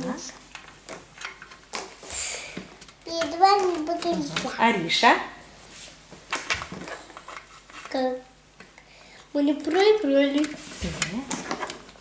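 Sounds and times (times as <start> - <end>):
child's voice: 3.1 - 4.6, 7.9 - 8.4.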